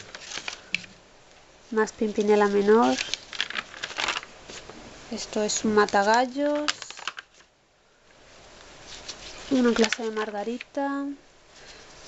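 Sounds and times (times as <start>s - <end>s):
paper pages turning: 0.0s - 0.9s, 2.0s - 7.5s, 8.8s - 10.8s.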